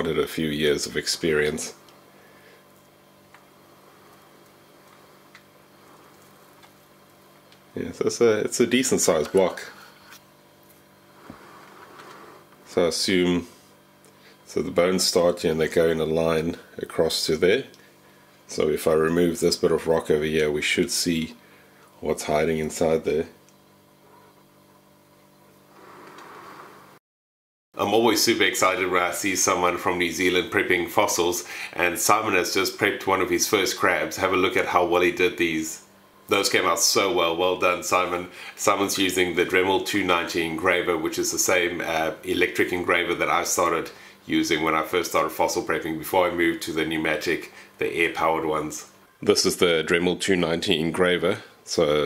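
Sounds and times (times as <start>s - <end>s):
steady low hum: 0.0s - 27.0s, 27.8s - 52.0s.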